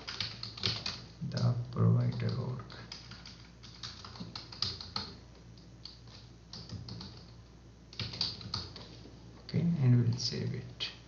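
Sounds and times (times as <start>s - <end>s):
keyboard keys clicking: 0.0s - 1.5s, 2.1s - 8.9s.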